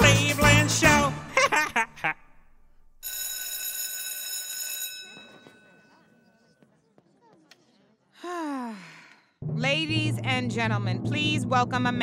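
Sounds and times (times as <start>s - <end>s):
bell-like ringing tone: 3.0s - 6.6s.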